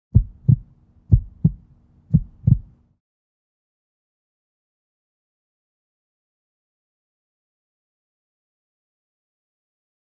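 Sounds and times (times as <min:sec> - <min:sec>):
heartbeat thumps: 0:00.1 - 0:02.7
faint low hum: 0:00.1 - 0:03.0.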